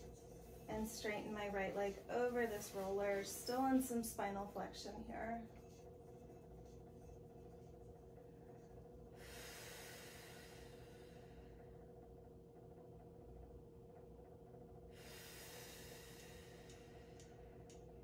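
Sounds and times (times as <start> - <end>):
faint steady hum: 0.0 - 18.0
long breathy breaths: 9.2 - 11.7, 14.9 - 17.7.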